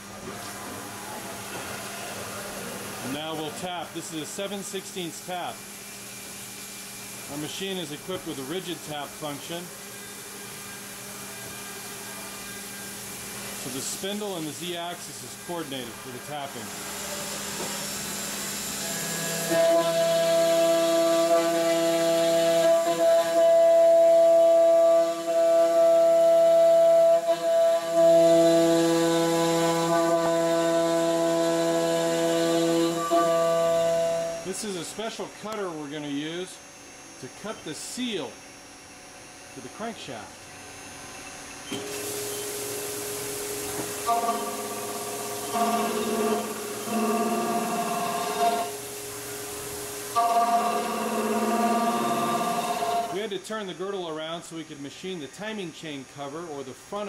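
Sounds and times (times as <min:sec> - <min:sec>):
milling machine whining hum: 0:00.0 - 0:53.3
coolant hiss: 0:41.7 - 0:53.2
coolant mist spray hiss: 0:41.8 - 0:45.5
ringing metal cutting: 0:43.6 - 0:53.2.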